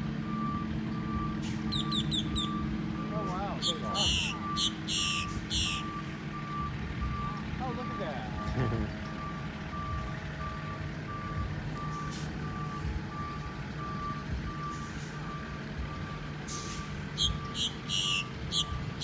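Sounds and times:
low engine drone: 0.0 - 19.0
reversing alarm beeping: 0.2 - 19.0
short high chirps: 1.7 - 2.6, 3.6 - 5.9.

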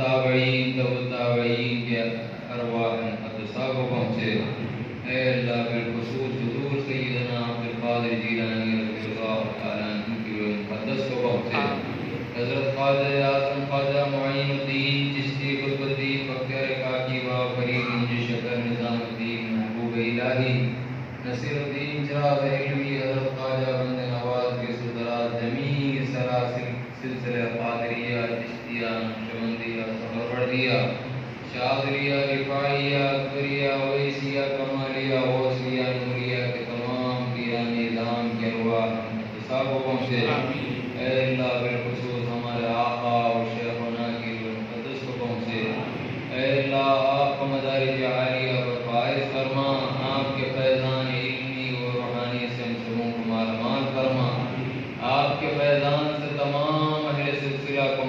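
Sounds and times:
man chanting a prayer: 0.0 - 58.0.

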